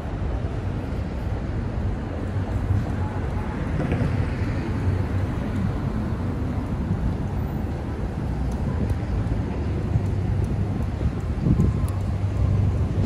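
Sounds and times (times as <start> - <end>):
city traffic rumble: 0.0 - 13.0.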